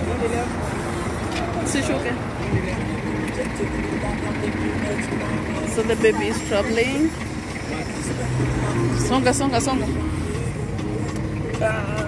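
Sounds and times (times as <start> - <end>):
engine rumbling: 0.0 - 12.0.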